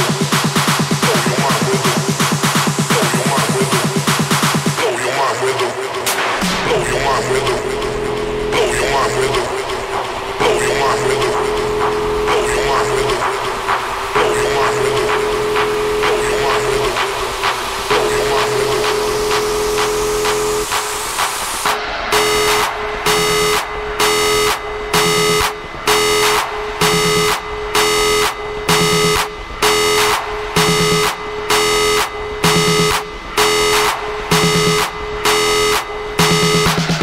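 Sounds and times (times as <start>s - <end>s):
chopped synth pattern: 0.0s - 37.0s.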